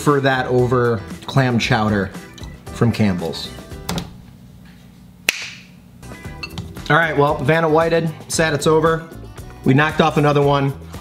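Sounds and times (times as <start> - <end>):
sharp snap with hiss: 5.3 - 5.7.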